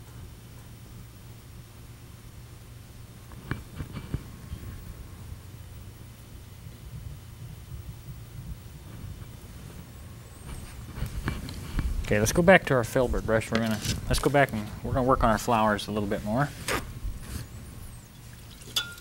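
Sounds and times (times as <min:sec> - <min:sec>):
low studio room hum: 0:00.0 - 0:18.5
paintbrush handling sounds: 0:13.1 - 0:14.8.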